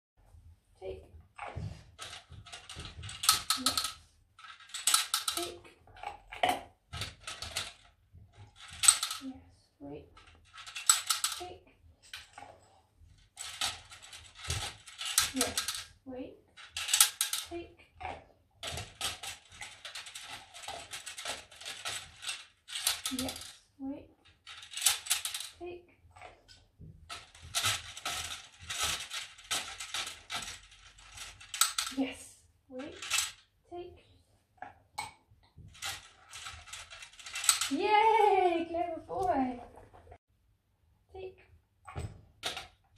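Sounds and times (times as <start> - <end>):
plastic counter rattling in frame: 1.6 - 9.3, 10.1 - 12.6, 13.2 - 23.6, 24.2 - 25.6, 26.3 - 32.0, 32.8 - 33.4, 35.0 - 37.8.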